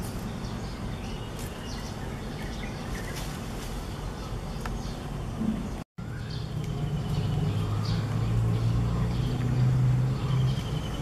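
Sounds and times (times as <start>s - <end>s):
engine humming: 0.0s - 11.0s.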